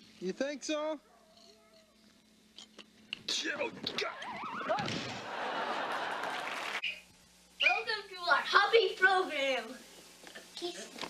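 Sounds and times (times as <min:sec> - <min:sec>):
scuffle of person falling: 0:03.7 - 0:05.3.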